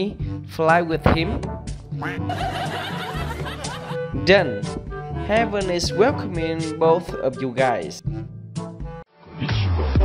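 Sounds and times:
background music: 0.0 - 10.0
snickering laughter: 2.3 - 4.0.

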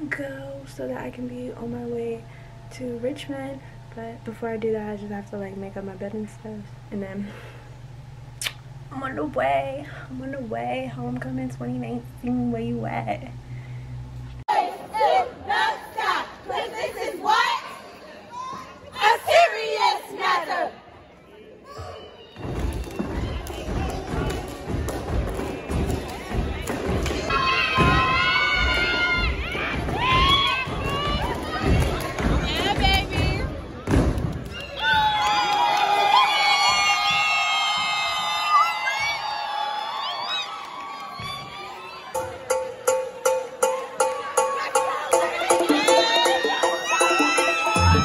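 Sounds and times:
audience cheering and screaming: 27.3 - 31.8, 34.5 - 42.4, 43.8 - 48.0
crowd murmur: 41.1 - 48.0.

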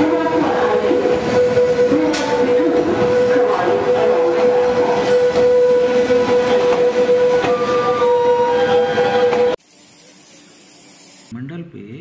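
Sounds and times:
steady high tone: 0.0 - 9.6
train coaches rumbling past: 0.0 - 9.6.

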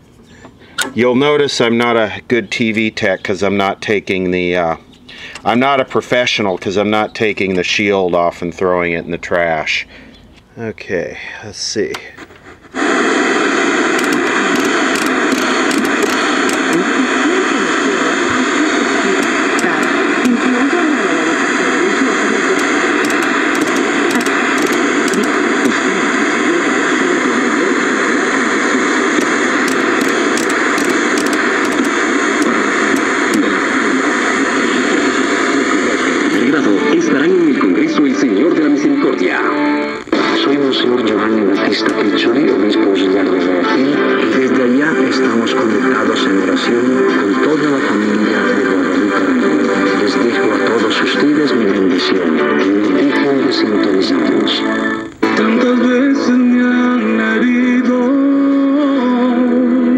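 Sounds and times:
broadcast talk: 0.8 - 55.5
static hiss: 12.2 - 38.7
broadcast music: 12.8 - 59.9.

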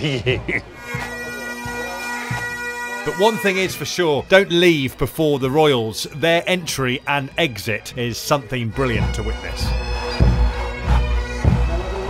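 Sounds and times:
bagpipes drone and melody: 0.7 - 12.0
bass drum beats: 9.0 - 12.0.

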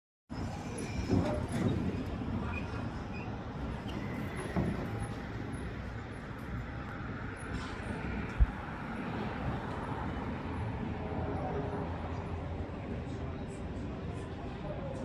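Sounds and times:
city street traffic: 0.3 - 15.0.

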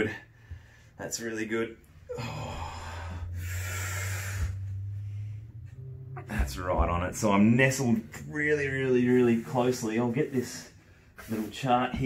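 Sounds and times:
steady low hum: 0.0 - 12.0
man breathing out forcefully: 2.1 - 5.5.

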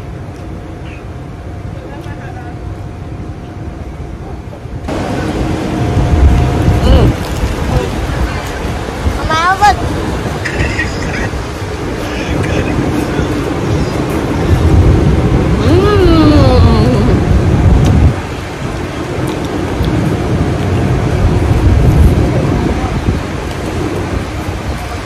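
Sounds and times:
street traffic: 0.0 - 25.0
wind buffeting microphone: 0.0 - 25.0.

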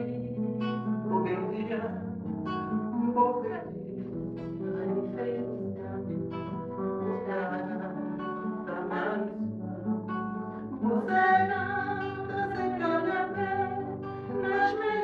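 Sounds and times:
woman singing: 0.0 - 2.2, 2.9 - 15.0
acoustic guitar: 0.0 - 15.0.

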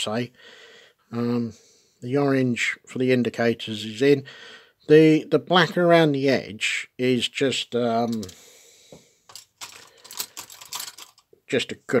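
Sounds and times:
plastic parts clicking: 9.3 - 11.3.

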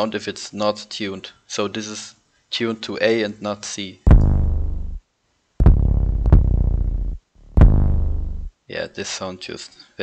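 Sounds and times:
deep booming bass note: 4.1 - 5.0, 5.6 - 8.5.

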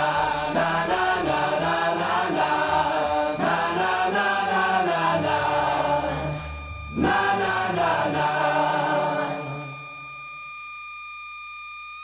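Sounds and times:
high electronic tone: 0.0 - 11.0.

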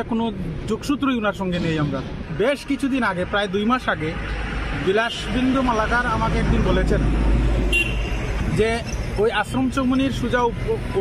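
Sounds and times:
man speaking: 0.0 - 7.2, 8.5 - 11.0
vehicle engine rumble passing: 0.0 - 11.0.

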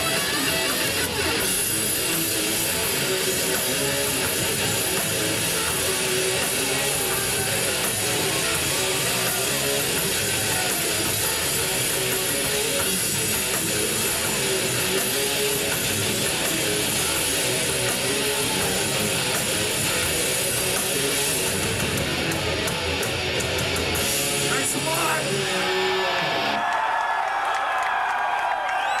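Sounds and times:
heavy metal band playing live: 0.0 - 26.6
crowd noise: 0.0 - 29.0.

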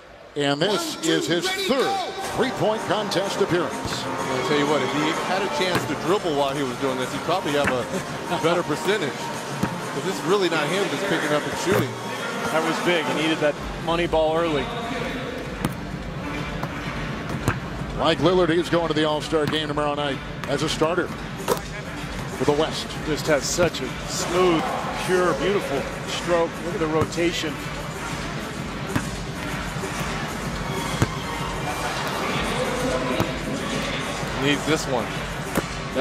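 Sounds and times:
arena crowd noise: 0.0 - 36.0
music: 1.0 - 36.0
basketballs knocking: 3.8 - 4.1, 5.6 - 6.6, 15.6 - 15.9, 16.5 - 17.7, 20.4 - 22.3, 28.8 - 32.0
basketballs knocking on rim and floor: 5.7 - 6.0, 16.6 - 17.6.

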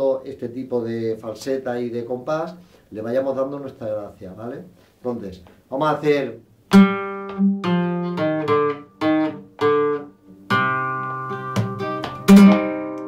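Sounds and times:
flamenco guitar: 6.7 - 13.0.

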